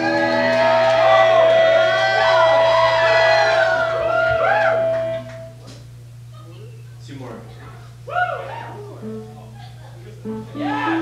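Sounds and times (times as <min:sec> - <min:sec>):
voices singing over chord: 0:00.0 - 0:03.6
crowd voices: 0:00.0 - 0:05.6, 0:07.5 - 0:11.0
steady low hum: 0:00.0 - 0:11.0.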